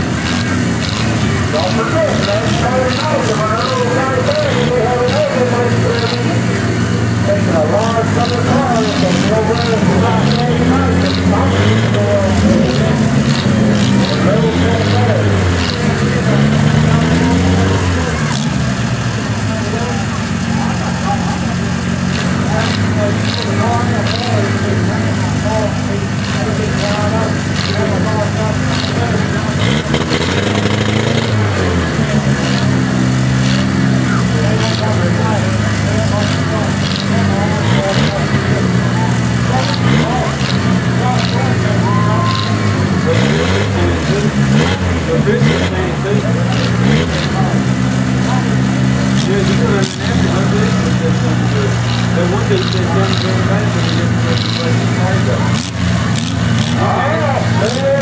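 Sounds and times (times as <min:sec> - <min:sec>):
car engines revving: 0:00.0 - 0:58.0
crowd chatter: 0:00.0 - 0:58.0.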